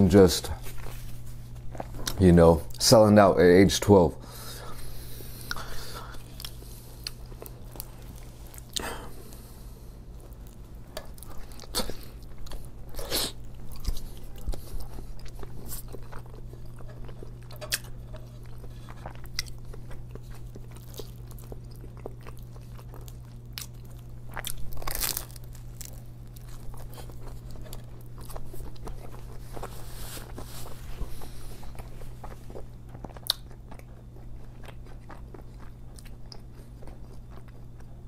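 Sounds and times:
biting and chewing sandwich: 0.5s - 2.8s, 4.8s - 38.0s
wet mouth clicks and smacks: 33.2s - 33.5s.

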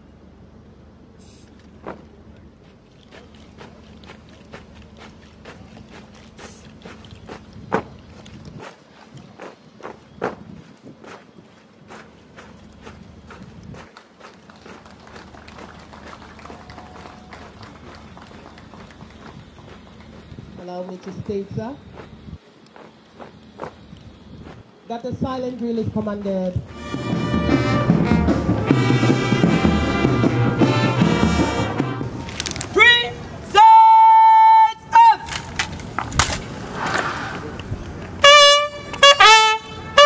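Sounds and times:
marching boots stamping on earth: 21.8s - 24.7s.

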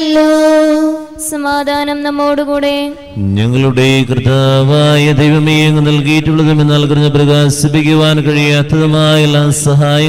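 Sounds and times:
held sung note: 0.0s - 1.9s
man chanting: 3.0s - 10.0s.

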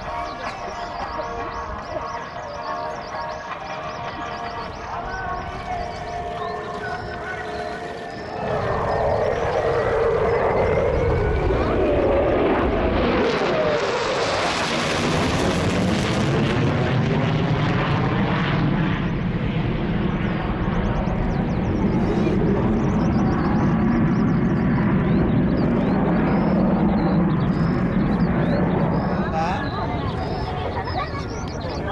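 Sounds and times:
fighter jet flying overhead: 0.0s - 31.9s.

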